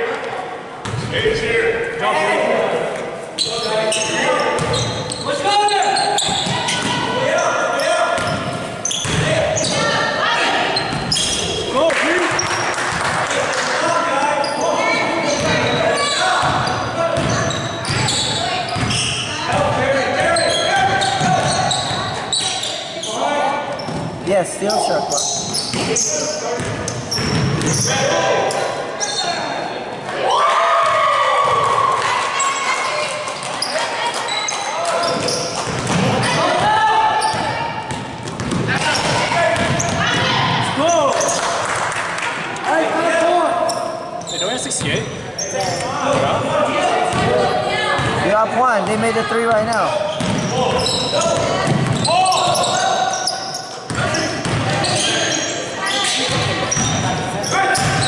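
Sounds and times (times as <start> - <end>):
players shouting: 45.7 - 58.0.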